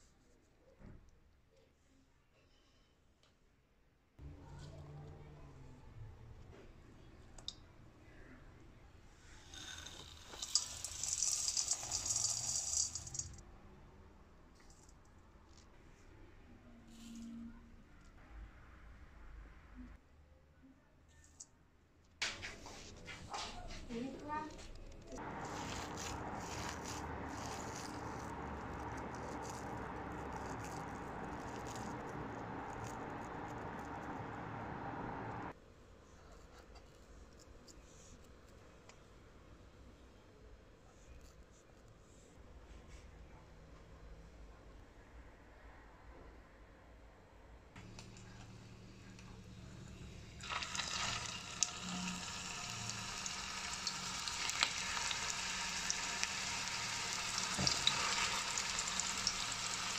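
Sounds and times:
breadcrumbs pouring into bowl: 9.5 - 13.4, 25.2 - 34.8, 50.3 - 59.9
hand kneading raw minced meat: 25.2 - 34.6.

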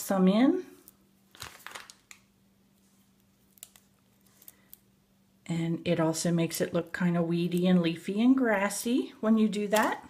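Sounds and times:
plastic bands rustling and clicking: 0.8 - 2.3, 3.0 - 4.9.

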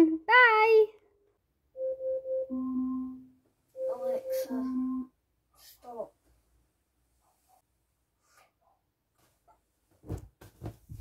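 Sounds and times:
phone alarm jingle: 1.8 - 5.1.

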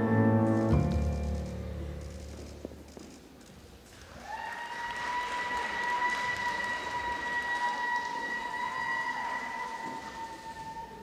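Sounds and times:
audience applauding: 3.9 - 11.0.

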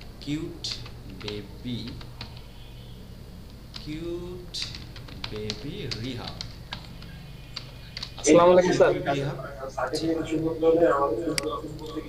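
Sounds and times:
person speaking: 0.2 - 2.0, 3.8 - 6.5, 8.2 - 12.0
computer keyboard keystrokes: 4.6 - 8.2.

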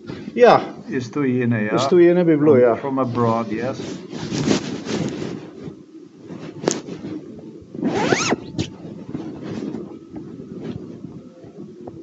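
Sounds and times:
muffled room noise: 0.0 - 12.0.

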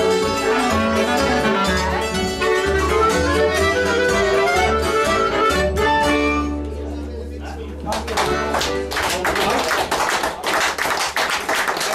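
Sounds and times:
audience applauding: 7.8 - 11.9.

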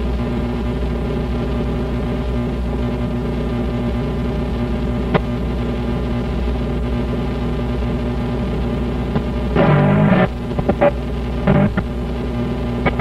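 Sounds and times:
amplifier hum and buzz: 0.0 - 13.0.

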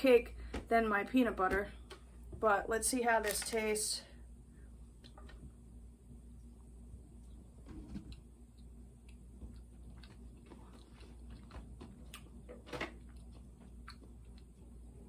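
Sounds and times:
person chewing: 8.1 - 15.0.

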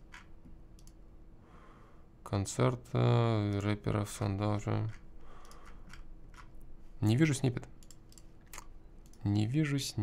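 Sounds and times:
computer keys clicking: 0.1 - 1.0, 4.8 - 6.6, 7.7 - 9.3.

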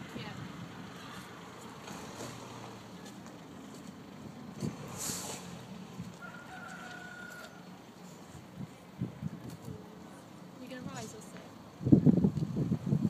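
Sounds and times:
outdoor background noise: 0.0 - 13.0
brief hiss: 4.9 - 5.6.

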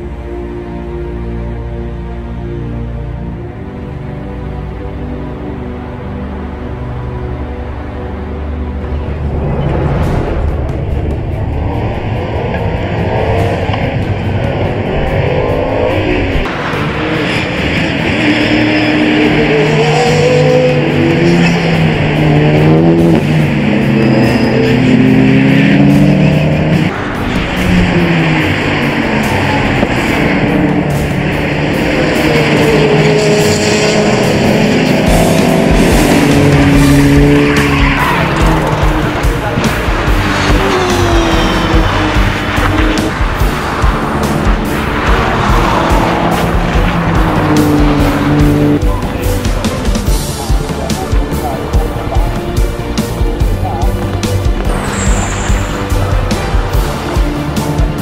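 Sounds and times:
background music: 0.0 - 58.0
race cars passing at speed: 4.6 - 58.0.

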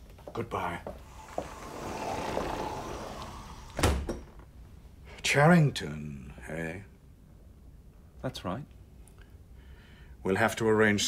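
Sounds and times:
door opening: 0.9 - 4.6
door shutting with thud: 1.4 - 4.5.

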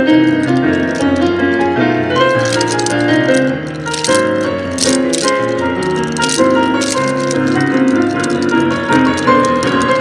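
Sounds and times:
wooden clappers clacking: 0.0 - 10.0.

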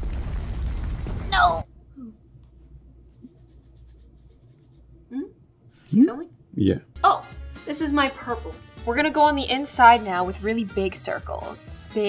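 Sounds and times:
low room hum: 1.1 - 6.9.

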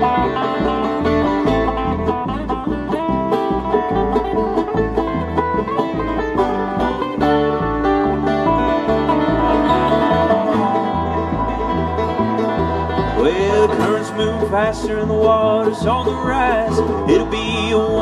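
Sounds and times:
banjo picking: 0.0 - 18.0
guitar: 0.0 - 18.0.

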